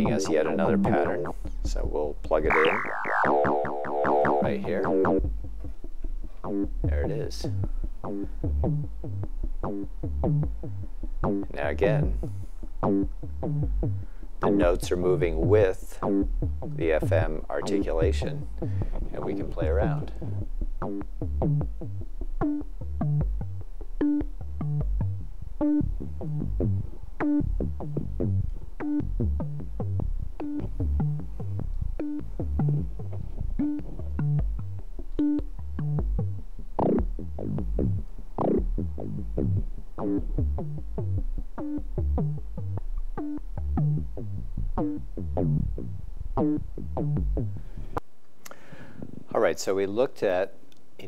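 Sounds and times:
synthesizer short repeating notes: 2.5s - 5.3s.

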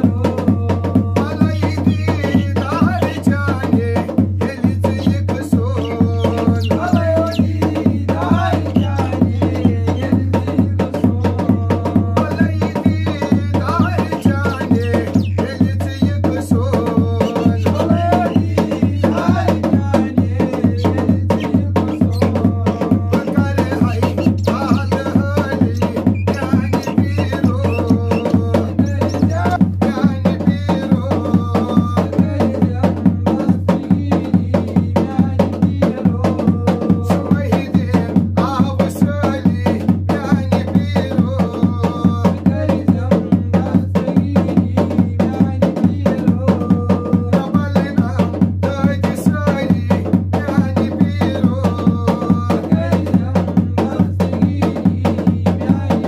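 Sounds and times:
dhol drum beaten in fast rhythm: 0.0s - 56.0s
voices singing a melody: 0.0s - 56.0s.

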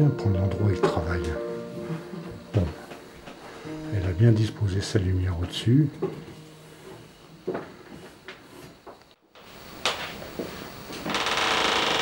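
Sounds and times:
loud rapid rattling buzz: 11.0s - 12.0s.

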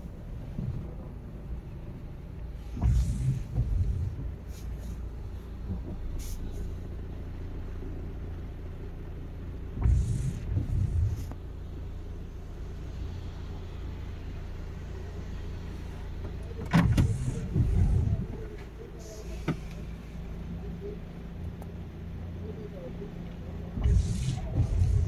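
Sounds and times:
car rumble from inside cabin: 0.0s - 25.0s
low thumps: 2.7s - 4.5s, 16.6s - 18.6s.

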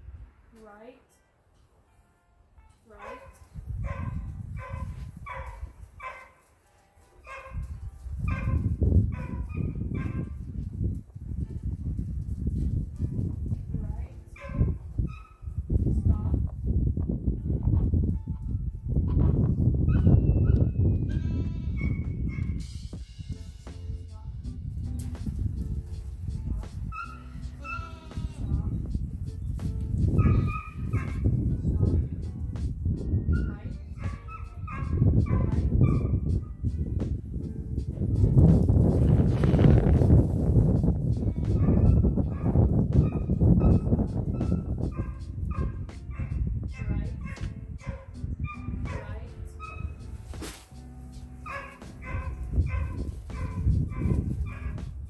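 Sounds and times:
goat kids bleating: 21.1s - 22.1s, 27.1s - 28.6s.

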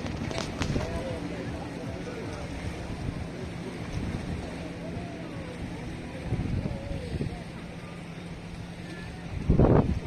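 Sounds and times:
boat engine drone: 0.0s - 10.0s
faint voices: 0.0s - 10.0s.

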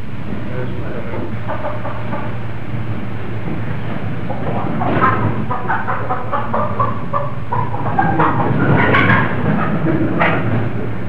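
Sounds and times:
film soundtrack hum and hiss: 0.0s - 11.0s.

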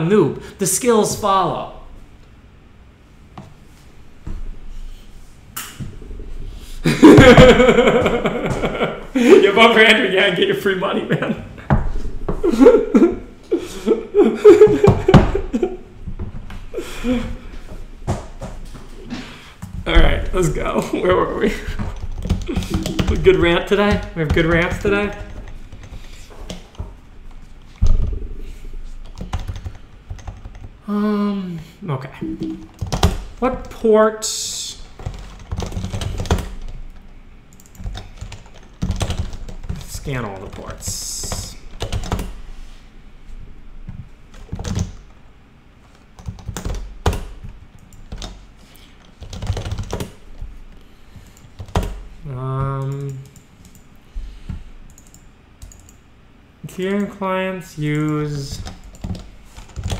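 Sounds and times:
loud low rumble: 5.9s - 8.4s
keyboard typing: 21.7s - 26.9s, 29.0s - 30.7s, 32.2s - 33.8s, 35.0s - 42.3s, 43.9s - 45.1s, 45.9s - 48.4s, 49.0s - 50.2s, 51.2s - 52.0s, 54.9s - 56.0s, 57.9s - 59.9s.

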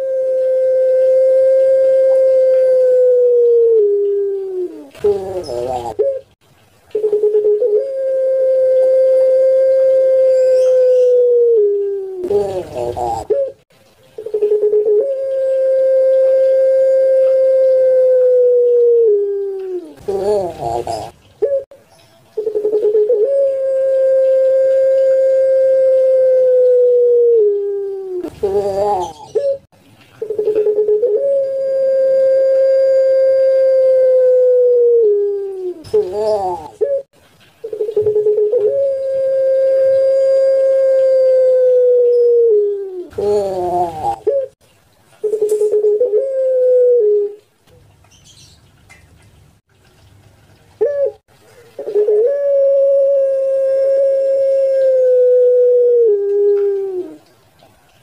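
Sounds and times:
dove cooing: 0.0s - 21.8s, 22.4s - 44.6s, 45.2s - 47.5s, 50.8s - 57.3s.

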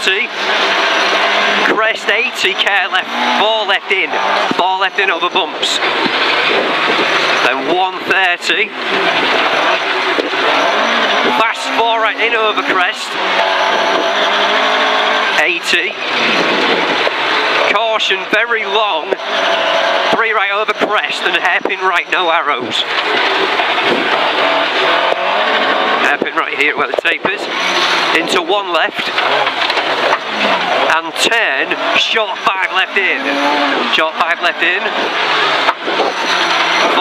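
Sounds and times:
car engine at high revs: 0.0s - 37.0s
tyres on gravel: 18.4s - 37.0s.

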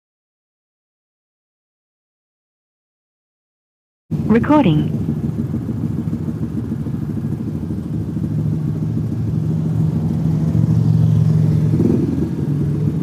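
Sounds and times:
motorcycle engines idling: 4.1s - 13.0s.

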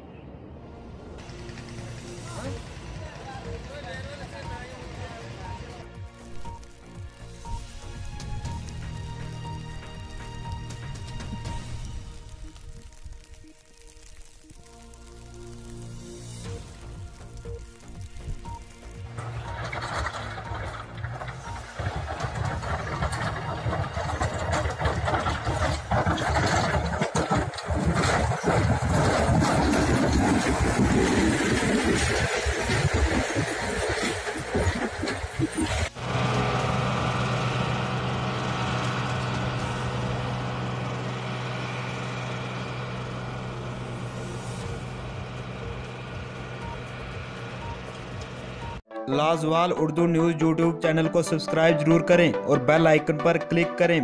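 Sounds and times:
steady engine hum: 0.2s - 13.3s, 14.7s - 48.9s
heavy vehicle engine running roughly: 1.2s - 6.6s, 18.4s - 48.8s.

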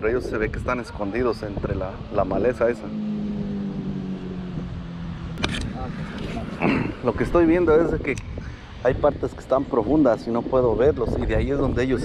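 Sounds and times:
low motor hum: 1.6s - 8.5s
sharp click: 5.4s - 5.8s.

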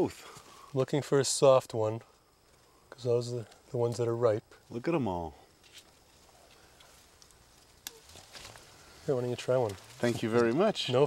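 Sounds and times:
rustling of vine leaves: 5.6s - 11.0s.

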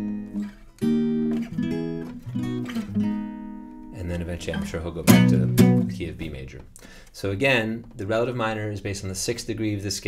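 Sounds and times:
acoustic guitar chords: 0.0s - 6.9s.

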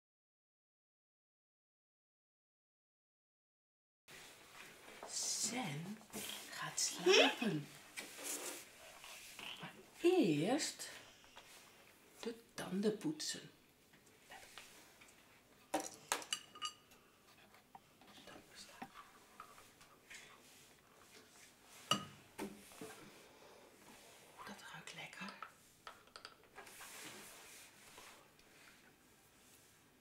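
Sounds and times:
whispered voice: 24.4s - 25.4s.

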